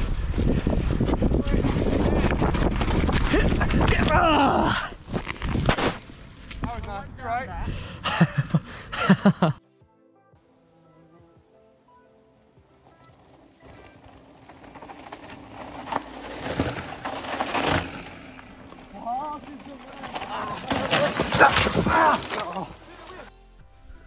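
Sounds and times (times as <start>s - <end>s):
bike tyres crunching on dirt: 0.0s - 7.2s, 12.7s - 23.4s
bike rattling: 0.0s - 8.6s, 12.8s - 23.3s
faint music: 9.5s - 16.0s, 22.3s - 24.0s
person shouting: 21.4s - 23.3s.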